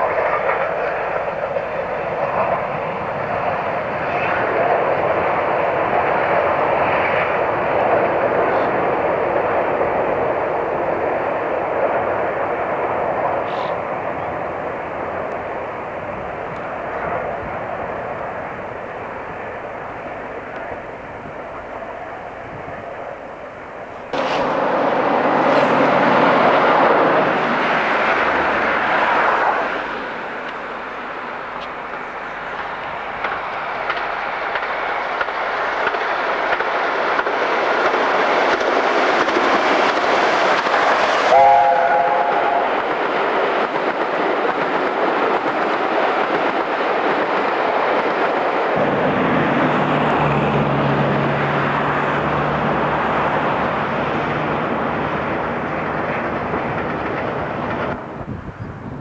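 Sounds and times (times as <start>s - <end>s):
steam train rumbling and rattling: 0.0s - 59.0s
chime train whistle: 41.3s - 42.8s.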